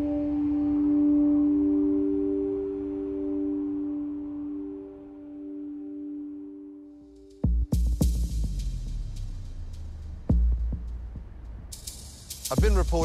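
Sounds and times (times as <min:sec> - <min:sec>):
ringing low drone music: 0:00.0 - 0:13.0.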